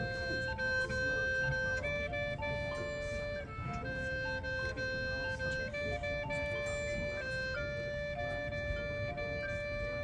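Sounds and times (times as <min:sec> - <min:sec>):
synthesizer slow melody: 0:00.0 - 0:10.0.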